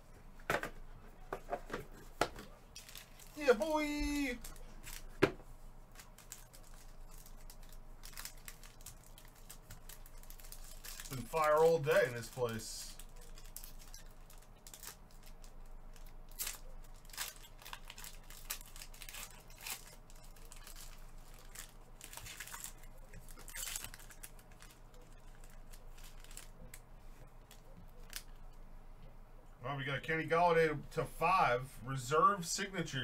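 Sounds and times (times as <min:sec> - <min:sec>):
foil and plastic wrapping crinkling: 0:02.8 - 0:26.8, 0:27.4 - 0:28.4.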